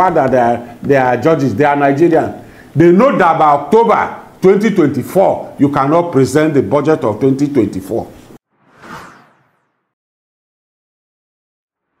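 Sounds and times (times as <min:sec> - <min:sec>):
interview room sound: 0:00.0 - 0:08.4
whoosh transition effect: 0:08.4 - 0:10.0.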